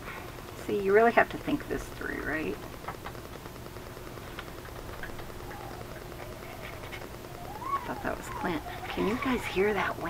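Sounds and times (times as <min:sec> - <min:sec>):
wind howling: 0:04.5 - 0:10.0.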